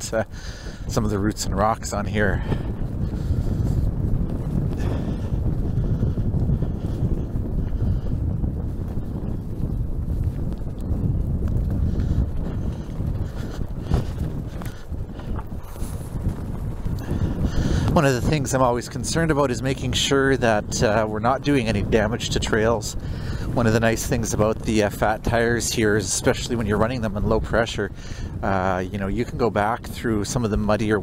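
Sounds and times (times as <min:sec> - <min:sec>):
tires rolling on dirt trail: 0:00.0 - 0:31.0
wind on microphone: 0:00.0 - 0:31.0.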